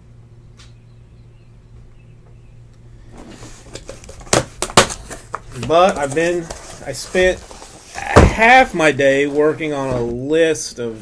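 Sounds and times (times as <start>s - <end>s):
faint low hum: 0.0s - 11.0s
rustling cardboard: 3.0s - 10.6s
sharp knocks on box: 4.3s - 5.2s.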